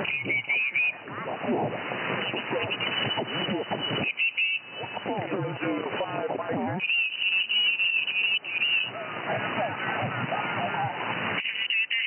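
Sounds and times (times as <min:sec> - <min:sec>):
high warbling whine: 0:00.0 - 0:12.0
narrow radio voices: 0:00.0 - 0:12.0.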